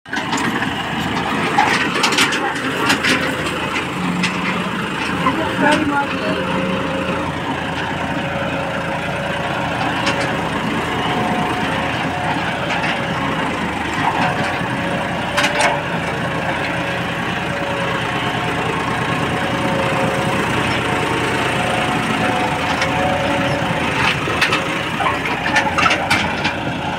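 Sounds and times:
tractor engine under load: 0.1 - 26.9.

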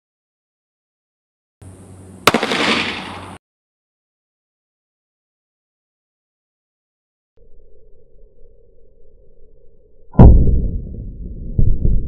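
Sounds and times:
faint steady hum: 1.6 - 3.4
pistol shot: 2.2 - 3.4.

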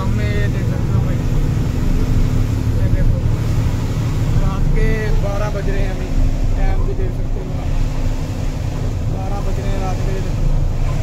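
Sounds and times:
truck diesel engine humming: 0.0 - 11.0.

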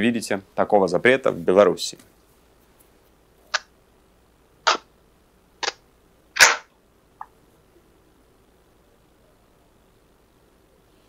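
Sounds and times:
cards snapping swishes: 6.4 - 6.7.

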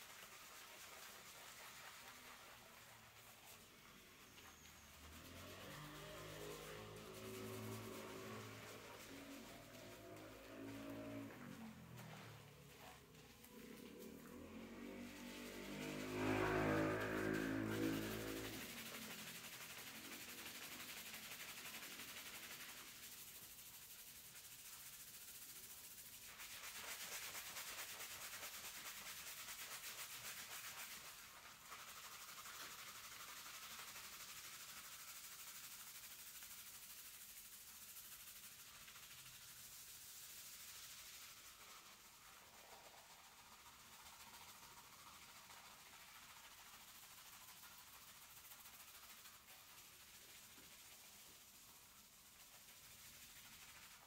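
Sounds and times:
fingertips scrubbing lathered hair: 0.0 - 54.0.

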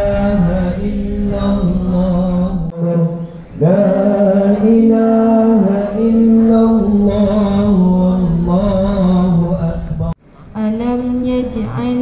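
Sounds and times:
melodic chanted recitation: 0.0 - 12.0.

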